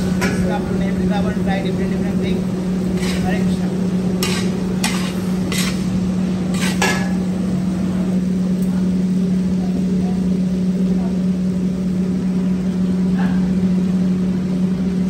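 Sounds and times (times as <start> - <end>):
low machine hum: 0.0 - 15.0.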